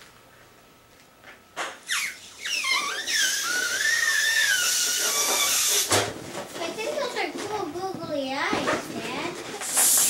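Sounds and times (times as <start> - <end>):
breath puffs into balloon: 1.8 - 6.0, 9.6 - 10.0
air rushing with whistling squeal: 1.9 - 5.9.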